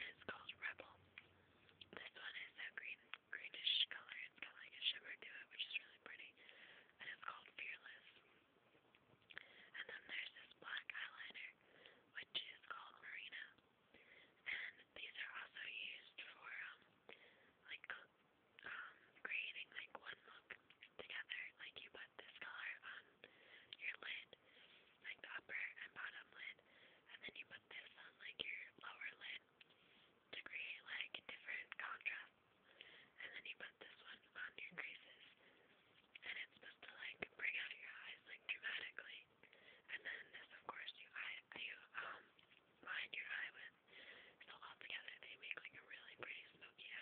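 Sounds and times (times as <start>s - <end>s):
person whispering: 0.0s - 1.1s, 1.8s - 6.4s, 7.0s - 8.2s, 9.7s - 13.6s, 14.4s - 16.9s, 17.6s - 24.4s, 25.0s - 29.5s, 30.3s - 32.3s, 33.2s - 35.4s, 36.0s - 47.0s.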